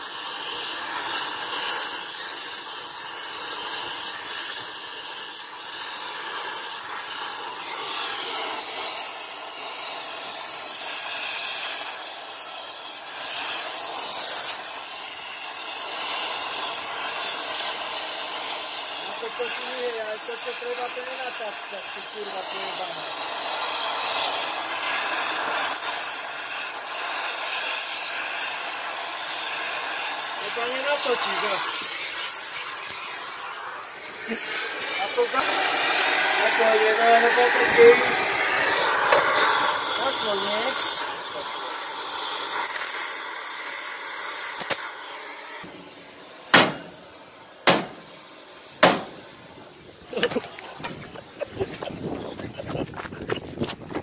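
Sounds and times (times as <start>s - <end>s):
gas torch flame hissing: 0.0s - 54.0s
hammer blows on steel: 46.5s - 46.9s, 47.6s - 48.0s, 48.8s - 49.2s.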